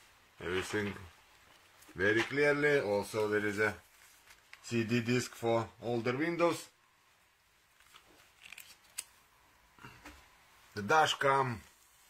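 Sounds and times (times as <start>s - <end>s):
plastic handling rustle: 0.4s - 5.7s, 7.6s - 9.2s.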